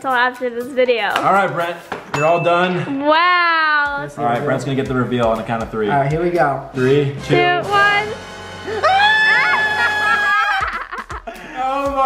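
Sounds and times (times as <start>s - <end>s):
young man screaming: 8.8s - 10.6s
man laughing: 9.0s - 12.0s.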